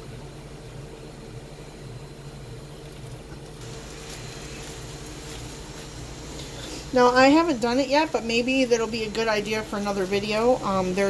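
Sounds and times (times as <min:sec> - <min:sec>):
steady low hum: 0:00.0 - 0:11.0
wet rustle of squeezed yarn: 0:02.9 - 0:06.7.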